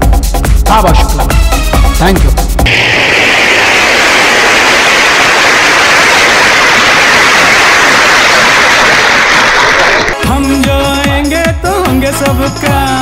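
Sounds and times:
music: 0.0 - 2.7, 10.1 - 13.0
loud static hiss: 2.6 - 10.2.

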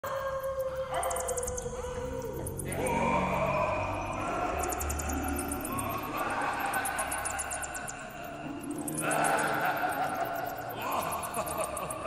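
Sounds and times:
dog howling: 0.1 - 4.8
fast high ticking: 4.1 - 12.0.

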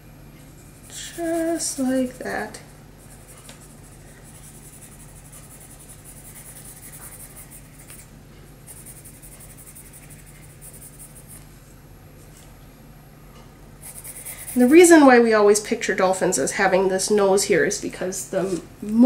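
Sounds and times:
low steady hum: 0.0 - 19.0
pencil scratching on paper: 0.7 - 8.1, 8.7 - 11.4, 13.8 - 15.0.

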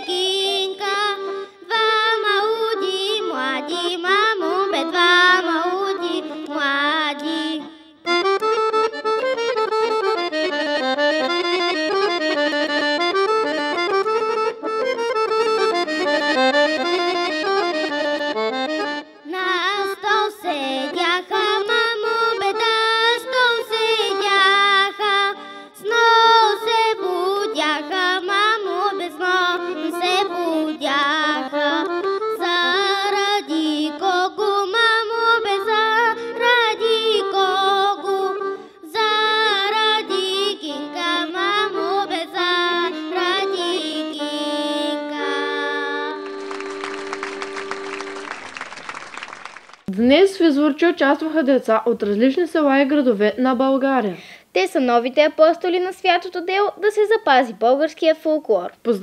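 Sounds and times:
girl singing folk song: 0.0 - 8.4, 19.1 - 46.4
accordion playing: 0.0 - 48.9.

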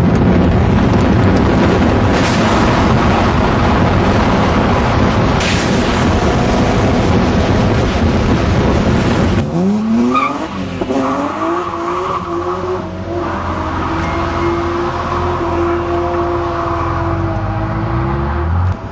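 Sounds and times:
car engine accelerating: 0.0 - 18.9
wind and road rushing: 0.0 - 18.9.

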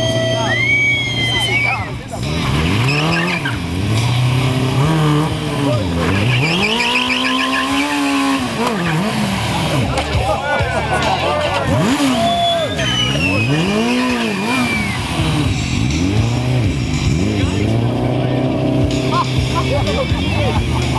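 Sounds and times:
tyre squealing: 0.0 - 10.0, 11.4 - 16.6
motorcycle engine revving: 0.0 - 20.9.

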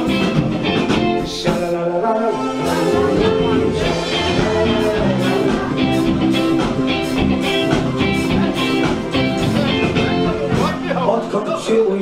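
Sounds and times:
dance band playing upbeat music: 0.0 - 12.0.

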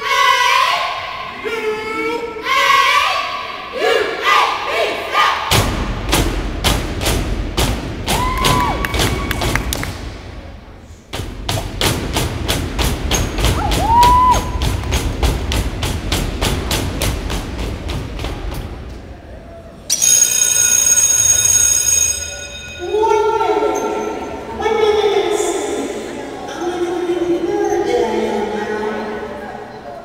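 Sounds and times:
person whooping: 13.6 - 14.6.

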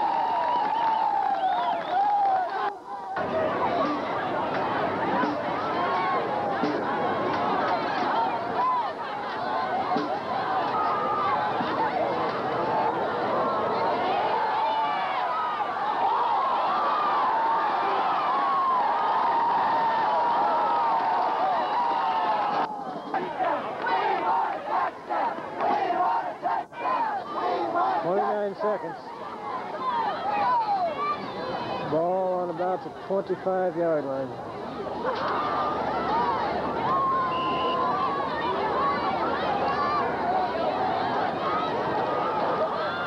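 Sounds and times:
crowd cheering and yelling: 0.0 - 43.0
scattered shouts and voices: 2.2 - 43.0.

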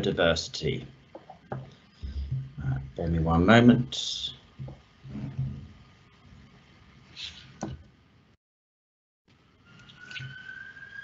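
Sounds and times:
man's quiet low voice: 2.0 - 4.4.

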